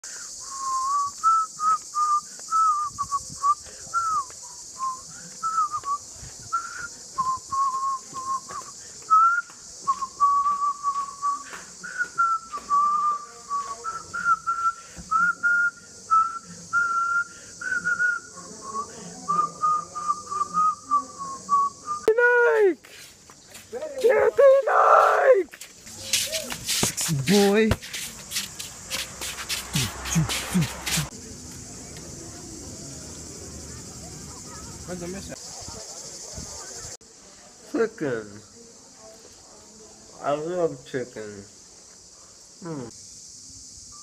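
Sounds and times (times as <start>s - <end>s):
high-pitched hiss: 0.0s - 44.0s
person whistling a tune: 0.4s - 22.1s.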